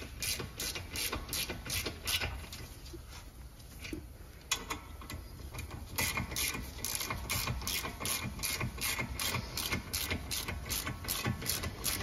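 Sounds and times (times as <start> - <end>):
socket ratchet clicking: 5.6 - 12.0.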